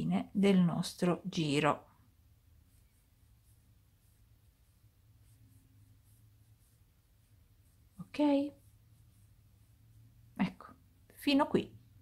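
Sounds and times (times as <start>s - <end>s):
faint low room hum: 0.0s - 12.0s
crochet hook scratching yarn: 1.6s - 11.9s.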